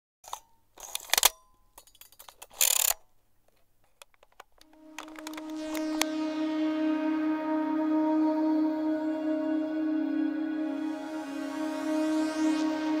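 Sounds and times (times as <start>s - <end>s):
scattered clicks: 0.3s - 6.1s
ambient background music: 4.6s - 13.0s.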